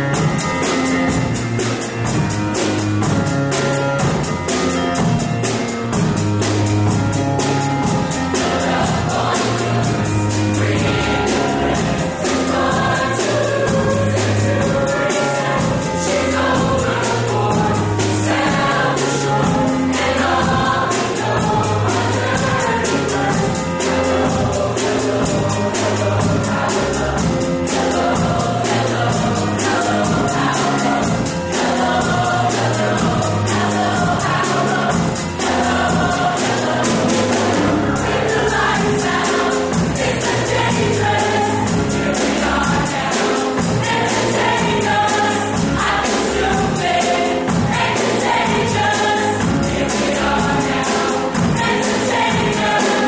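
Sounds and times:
choir singing: 0.0s - 53.0s
steady beat: 0.0s - 53.0s.

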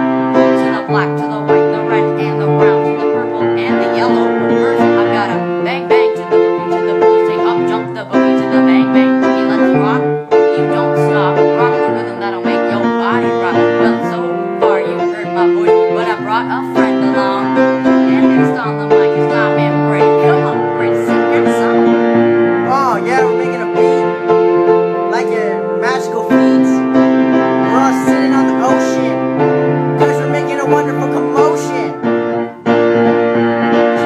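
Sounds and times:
piano playing held chords: 0.0s - 34.0s.

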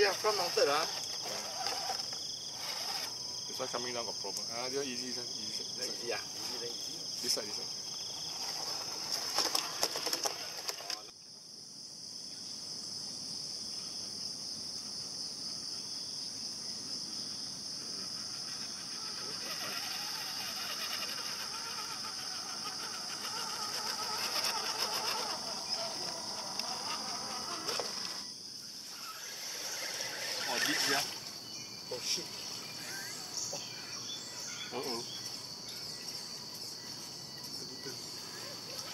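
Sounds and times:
insects chorus: 0.0s - 38.9s.

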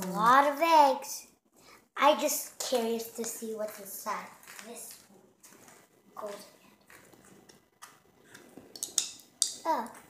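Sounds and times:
plastic egg clicking and rattling: 2.6s - 10.0s.

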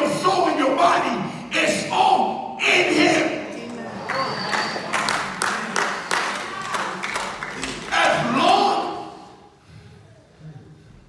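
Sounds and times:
voices in crowd: 2.6s - 10.8s
audience clapping: 3.6s - 8.9s.

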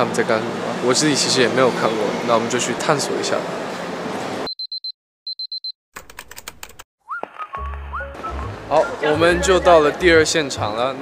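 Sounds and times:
digital alarm clock beeps: 4.5s - 5.8s
keyboard typing clicks: 6.0s - 6.8s.

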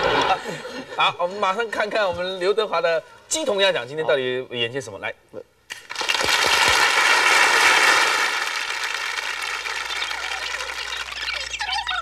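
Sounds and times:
audience applauding and cheering: 5.8s - 12.0s.

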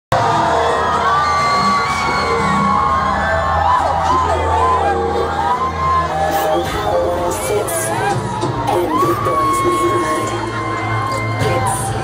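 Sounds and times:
crowd cheering and whooping: 0.1s - 12.0s.

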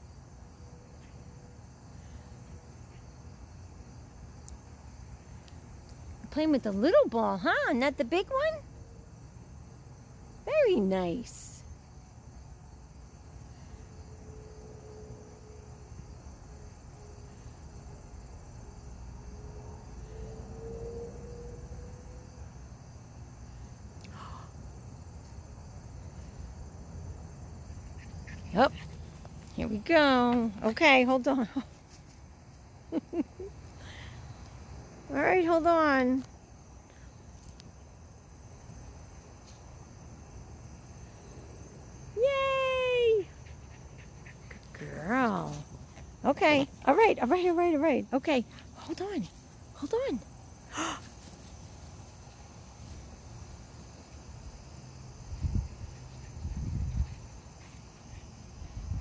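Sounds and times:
insects droning: 0.0s - 59.0s.

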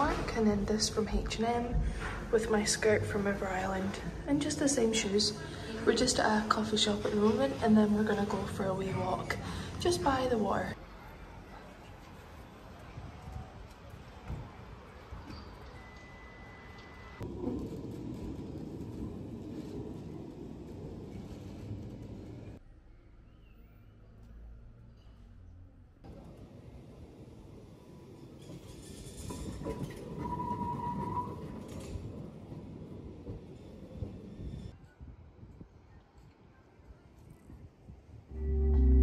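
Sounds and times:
tram rumbling on rails: 0.0s - 34.8s, 38.0s - 39.0s
steady high whine: 38.3s - 39.0s.

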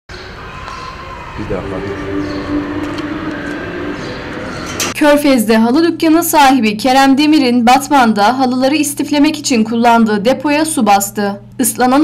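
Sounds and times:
traffic rumble: 0.1s - 5.4s
vehicle engine humming: 1.4s - 5.2s.

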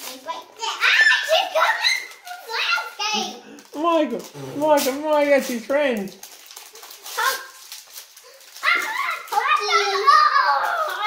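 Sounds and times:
foil wrappers crinkling: 0.0s - 11.0s
child squealing: 8.6s - 11.0s.

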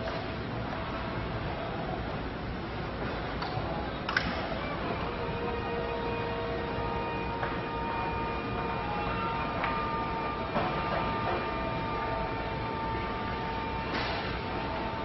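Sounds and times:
electric lift motor humming: 4.4s - 15.0s.

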